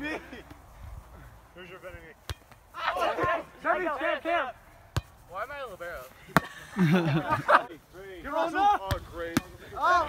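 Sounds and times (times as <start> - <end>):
loud shout: 2.8 - 4.5, 9.8 - 10.0
volleyball being struck: 4.9 - 5.2.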